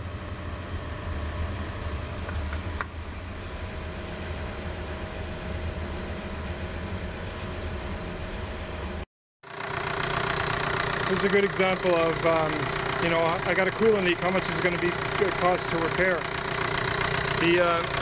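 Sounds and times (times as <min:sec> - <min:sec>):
diesel engine idling: 0:09.4 - 0:18.0.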